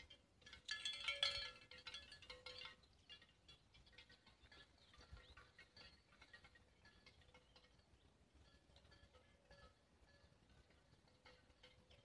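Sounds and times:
cowbell clanking: 0.0 - 12.0.

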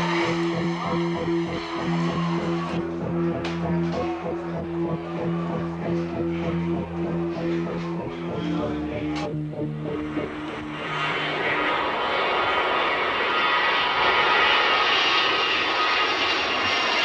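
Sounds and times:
jet airliner flying overhead: 0.0 - 17.0.

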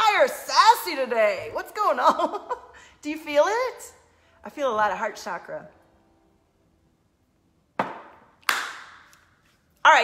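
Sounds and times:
hand claps: 7.8 - 9.2.

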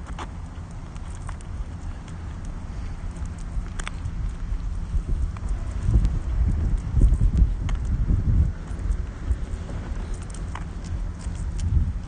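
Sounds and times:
wind rumble: 0.0 - 12.0.

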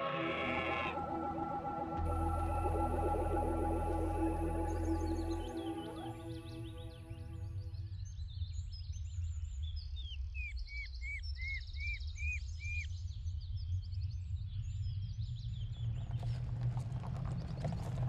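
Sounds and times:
car driving in: 0.9 - 7.4
steady low rumble: 0.9 - 7.8.

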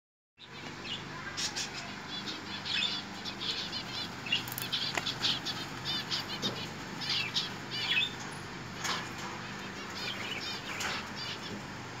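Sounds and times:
small birds chirping: 0.4 - 12.0.

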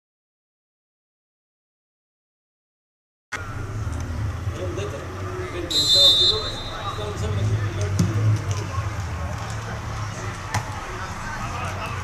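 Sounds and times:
distant players' voices: 3.4 - 12.0.

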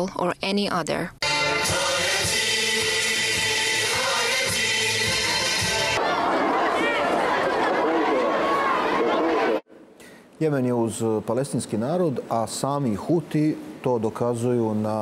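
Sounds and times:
crowd of women chanting: 3.7 - 9.7
many voices calling over each other: 3.8 - 9.6.

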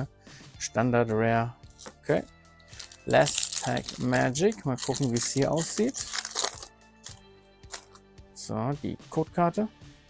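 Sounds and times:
cards clicking: 2.7 - 8.0
foil wrapper crinkling: 2.7 - 8.0.

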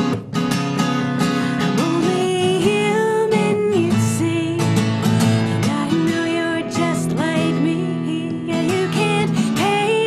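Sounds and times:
acoustic guitar strummed: 0.0 - 10.0.

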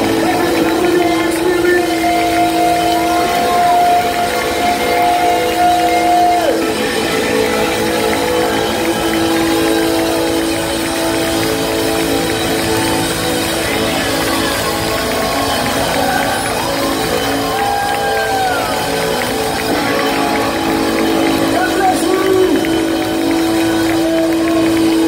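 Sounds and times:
audience cheering: 0.0 - 25.0
live band and singers: 0.0 - 25.0.

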